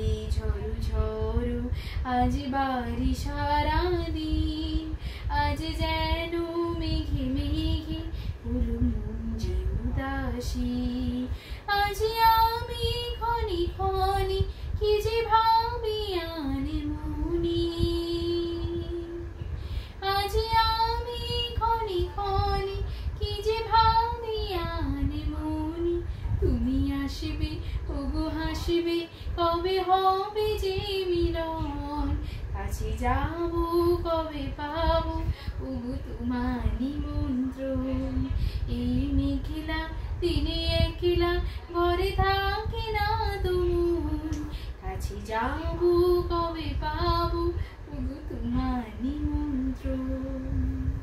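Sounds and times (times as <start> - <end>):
woman singing unaccompanied: 0.0 - 51.0
singer breathing: 1.7 - 2.1, 5.0 - 5.3, 19.4 - 20.0.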